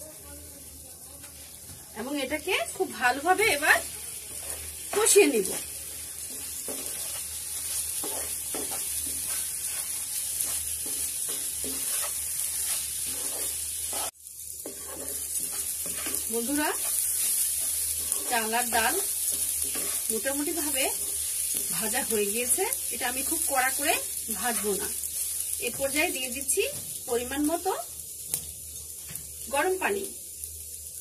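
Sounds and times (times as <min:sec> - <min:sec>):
oil sizzling: 0:00.0 - 0:31.0
spatula scraping frying pan: 0:03.5 - 0:22.6.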